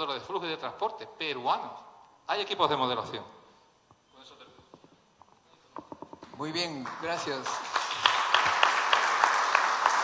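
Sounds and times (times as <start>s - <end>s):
audience applauding: 6.7s - 10.0s.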